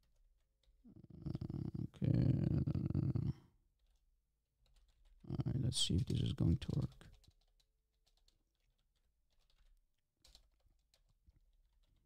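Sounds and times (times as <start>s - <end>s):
computer keyboard typing: 6.1s - 12.0s.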